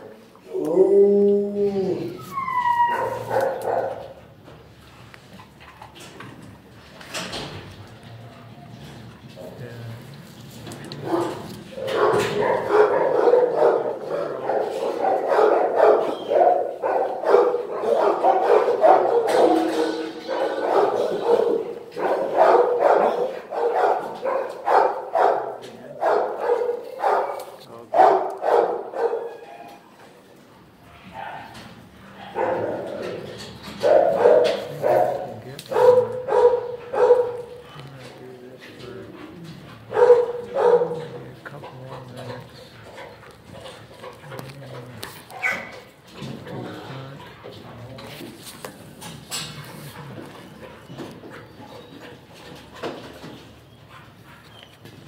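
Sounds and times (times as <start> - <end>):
dogs barking: 2.8 - 4.3, 11.0 - 29.4, 31.0 - 37.8, 39.3 - 44.5, 45.3 - 46.4.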